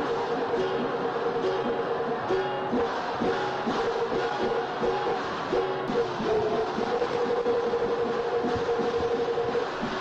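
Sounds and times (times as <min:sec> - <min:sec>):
music with long held note: 0:00.0 - 0:10.0.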